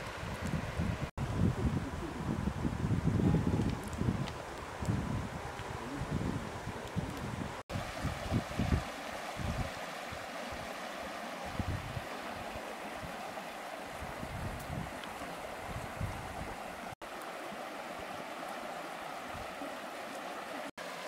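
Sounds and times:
wind buffeting microphone: 0.0s - 10.7s, 11.4s - 13.3s, 13.9s - 16.9s
stream water rushing: 4.0s - 21.0s.

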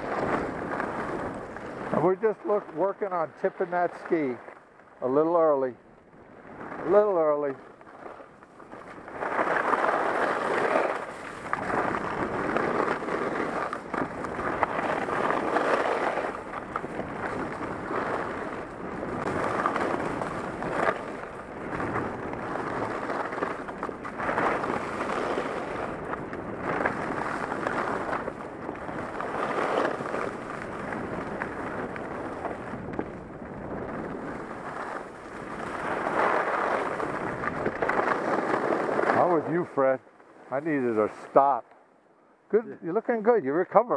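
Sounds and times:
wind on microphone: 0.0s - 4.4s, 8.6s - 39.6s
skis scraping on snow: 0.0s - 41.7s.

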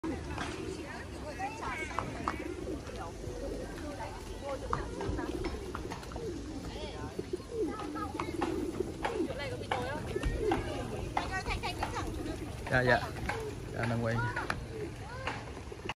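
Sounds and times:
pigeons cooing: 0.0s - 15.9s
voices in background: 0.0s - 15.9s.

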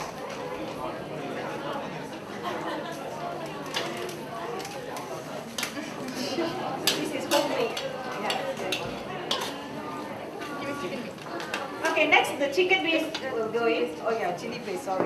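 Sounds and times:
metal spatula scraping a wok: 8.3s - 9.7s.

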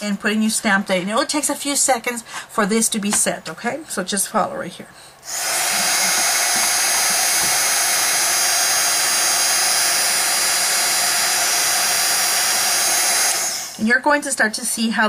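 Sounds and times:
heat tool fan whining: 0.0s - 14.6s.

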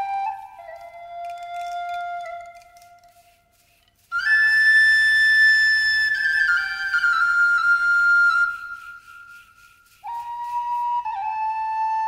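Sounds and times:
flute melody: 0.0s - 3.4s, 4.1s - 12.0s.

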